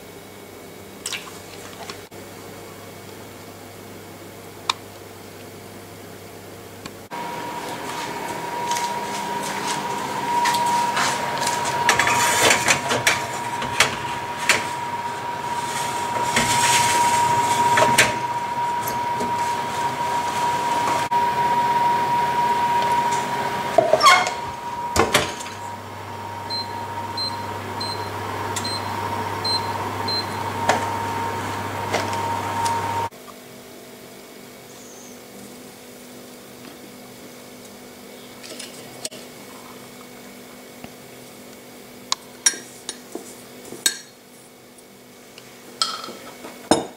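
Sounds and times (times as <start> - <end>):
steady whine: 7.1 - 33.1.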